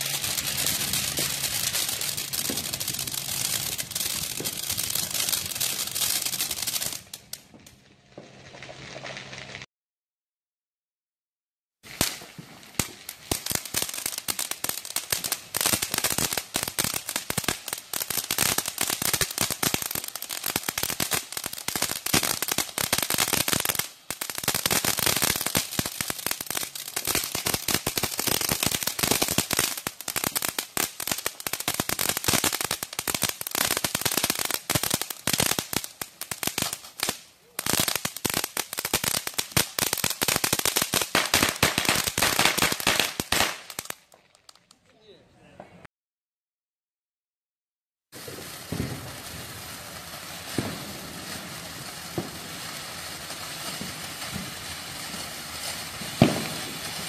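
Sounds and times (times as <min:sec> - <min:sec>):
firework crackling: 0:00.0 - 0:09.7, 0:11.8 - 0:44.8, 0:48.1 - 0:57.0.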